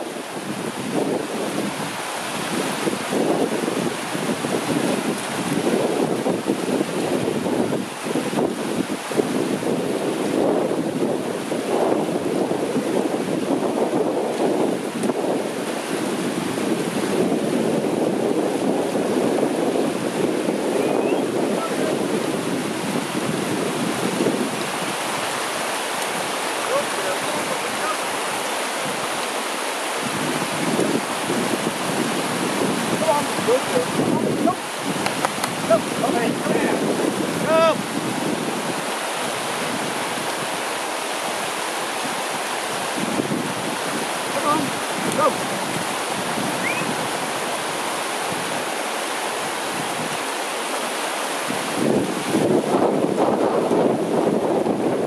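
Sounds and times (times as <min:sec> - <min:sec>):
rocky river rushing: 0:00.0 - 0:55.0
wind gusting on microphone: 0:00.0 - 0:55.0.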